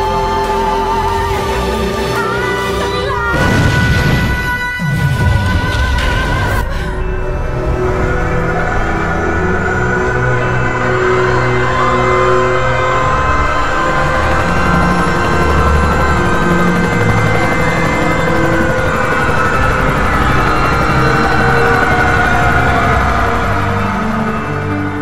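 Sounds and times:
dramatic soundtrack music: 0.0 - 25.0
thick rumbling noise: 0.0 - 25.0.

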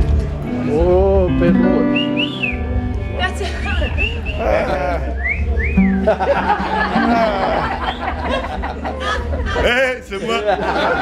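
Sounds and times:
low guitar note: 0.5 - 2.1
person whistling: 1.8 - 2.7, 3.9 - 6.0.

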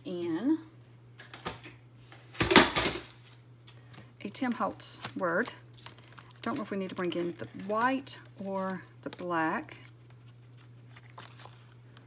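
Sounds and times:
clatter of clicks and paper rustle: 5.8 - 12.0.

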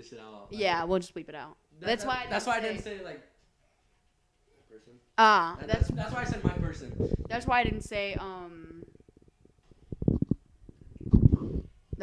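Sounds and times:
low muffled thumps: 5.6 - 8.7.

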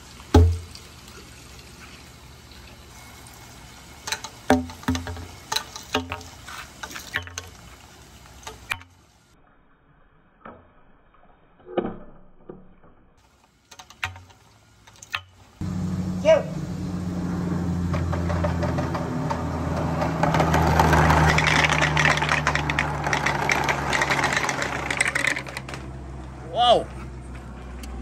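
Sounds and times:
balls rolling down plastic gutter: 17.9 - 26.1.

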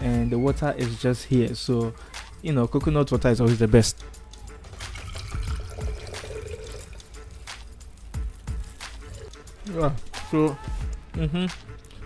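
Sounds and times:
quiet background music: 0.0 - 12.0
liquid drinking sounds: 4.7 - 7.2.

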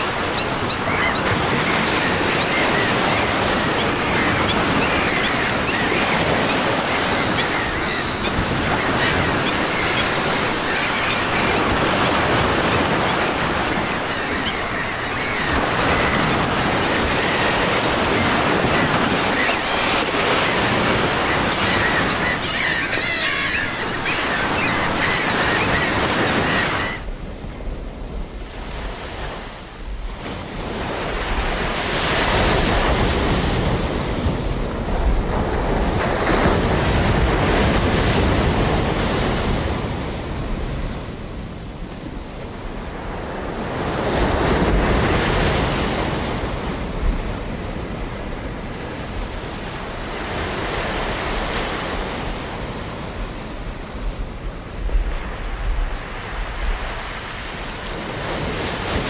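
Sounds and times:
ocean waves on beach: 0.0 - 59.0.

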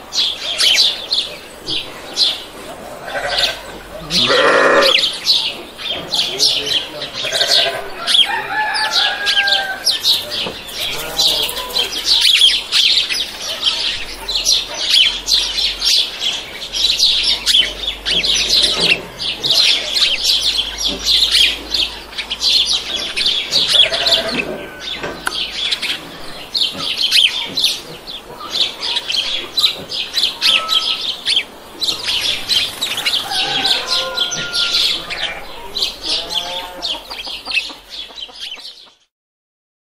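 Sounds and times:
chickens clucking: 0.0 - 39.1.

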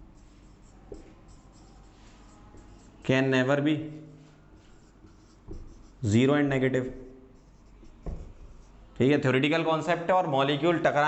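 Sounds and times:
marker scratching on whiteboard: 0.0 - 3.1, 4.0 - 9.0.

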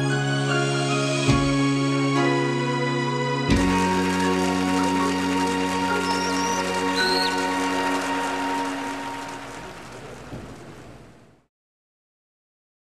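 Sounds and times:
held chord of backing track: 0.0 - 10.2
audience applause: 3.5 - 10.7.

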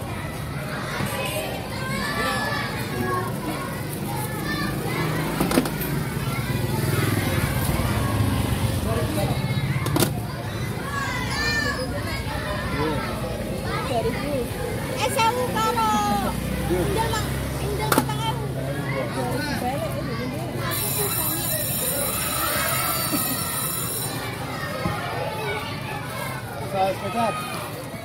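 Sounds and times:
children talking and shouting: 0.0 - 28.0.

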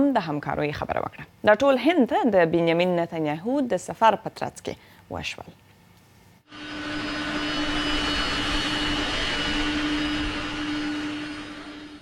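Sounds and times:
high engine whine: 6.5 - 12.0
jet engines roaring: 6.5 - 12.0.

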